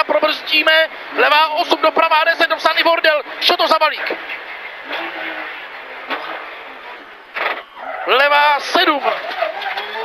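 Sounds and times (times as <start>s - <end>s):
road and wind noise: 0.0s - 10.0s.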